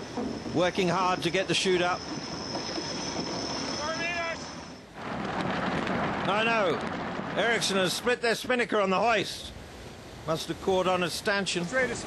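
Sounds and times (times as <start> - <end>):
faint high whine: 0.0 - 4.9
wind and water rushing: 0.0 - 12.0.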